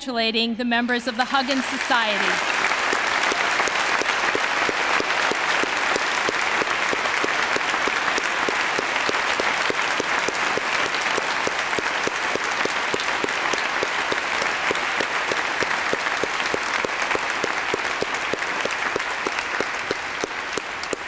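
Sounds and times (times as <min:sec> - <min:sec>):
audience applauding: 0:01.1 - 0:21.0.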